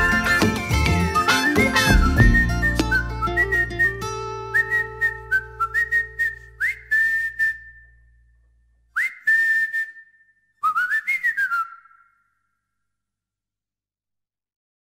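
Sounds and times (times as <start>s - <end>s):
low accompaniment: 0.0s - 5.9s
person whistling a melody: 0.0s - 8.1s, 9.0s - 12.2s.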